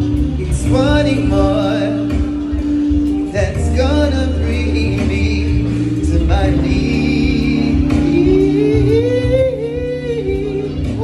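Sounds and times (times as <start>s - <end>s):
backing music track: 0.0s - 11.0s
man singing into a microphone: 0.0s - 11.0s.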